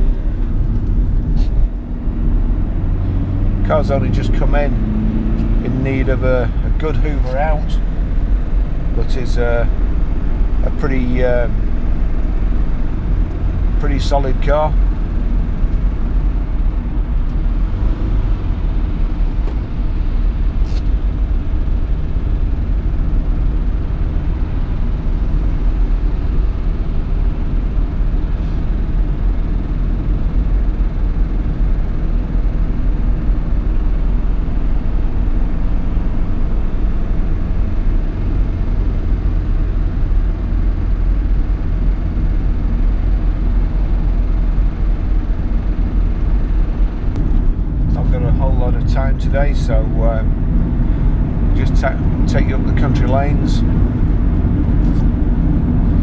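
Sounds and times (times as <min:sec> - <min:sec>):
car cabin road and engine rumble: 0:00.0 - 0:56.0.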